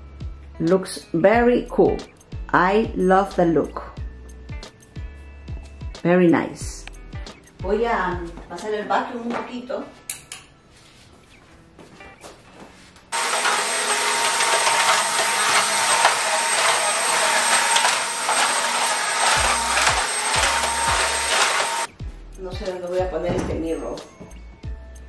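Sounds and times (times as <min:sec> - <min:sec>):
vacuum cleaner running: 0:13.2 - 0:21.9.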